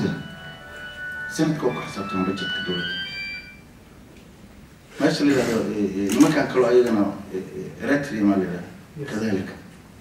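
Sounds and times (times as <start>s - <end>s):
steady high tones: 0.0s - 3.9s
room hum: 0.0s - 10.0s.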